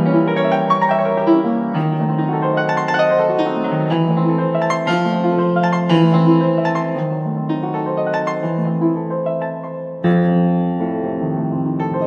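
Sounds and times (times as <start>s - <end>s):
fortepiano playing chords: 0.0s - 12.0s.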